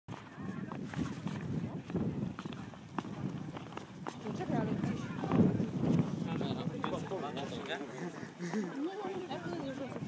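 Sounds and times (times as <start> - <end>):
people talking: 3.4 - 10.0.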